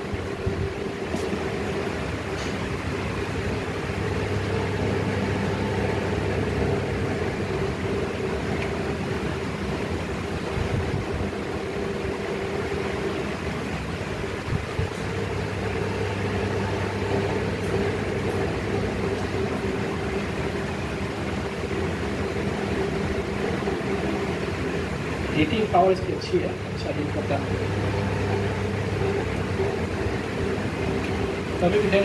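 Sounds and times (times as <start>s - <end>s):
steady mechanical hum: 0.0s - 32.0s.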